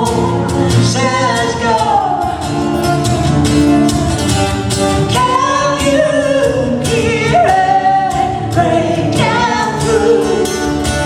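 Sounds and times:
woman singing: 0.0 - 2.4, 5.0 - 11.0
guitar strumming: 0.0 - 11.0.

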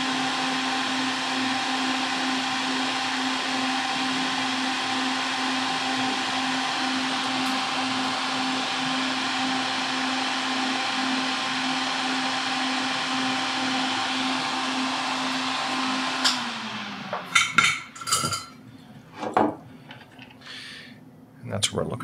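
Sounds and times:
extractor fan whirring: 0.0 - 18.2.

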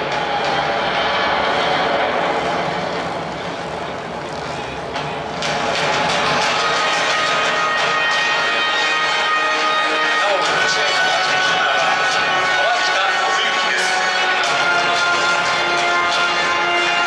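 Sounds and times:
public address echoing: 0.0 - 17.0
stadium crowd din: 0.0 - 17.0.

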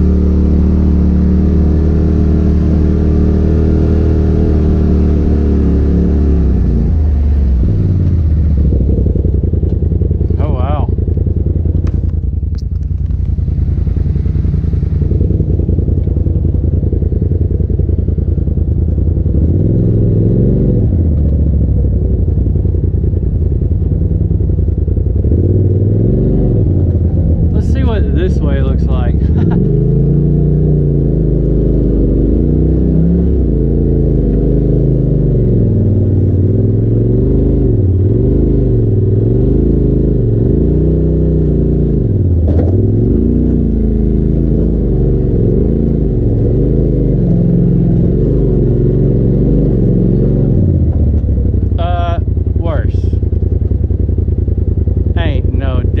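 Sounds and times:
vehicle engine at low revs: 0.0 - 56.0.

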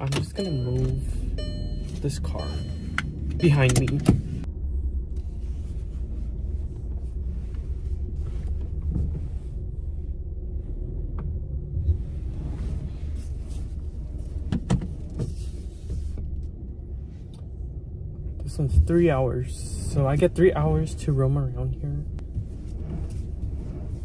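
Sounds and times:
car engine running low speed: 0.0 - 24.0.

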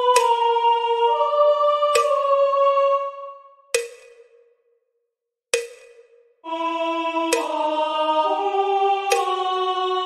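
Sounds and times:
metronome clicks: 0.1 - 0.4, 1.9 - 2.2, 3.8 - 4.4, 7.3 - 7.6, 9.1 - 9.4.

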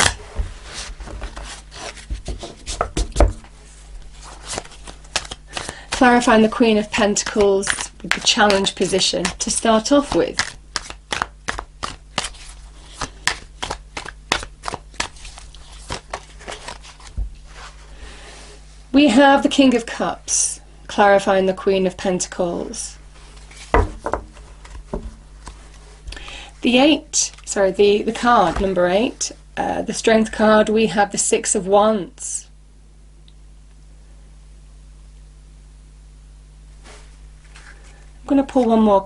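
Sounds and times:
cards being shuffled: 4.1 - 17.8, 23.2 - 26.0, 36.8 - 38.0
card laid on table thump: 23.7 - 24.3.

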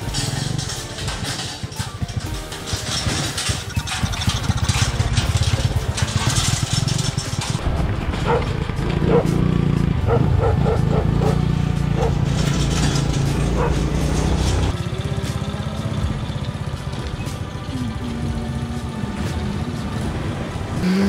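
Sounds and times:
motorcycle engine running: 0.0 - 21.0
dog barking: 8.2 - 9.3, 10.1 - 12.2, 13.5 - 13.9.

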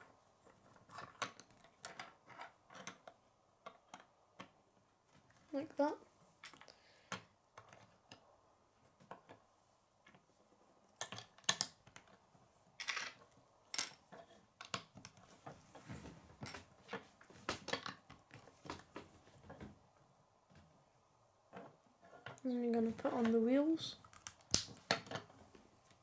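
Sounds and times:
plastic bricks clicking: 11.0 - 12.2, 24.1 - 25.3.

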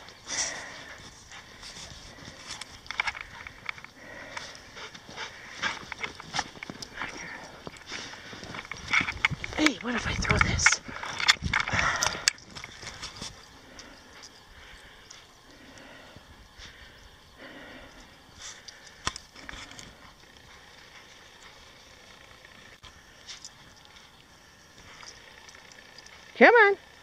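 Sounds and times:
crunching and rustling in snow: 0.0 - 13.7
faint clicks: 0.0 - 16.3, 17.8 - 27.0
quiet outdoor ambience: 0.0 - 27.0.

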